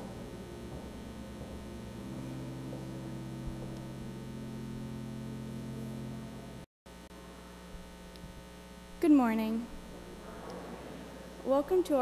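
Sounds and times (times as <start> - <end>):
low held tones: 0.0 - 6.7
electrical mains hum: 0.0 - 12.0.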